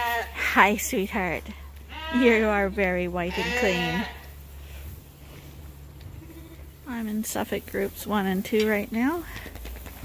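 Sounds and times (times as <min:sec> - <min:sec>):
steady low hum: 0:00.1 - 0:10.0
sheep bleat: 0:01.9 - 0:02.5, 0:03.2 - 0:04.3, 0:06.1 - 0:06.7.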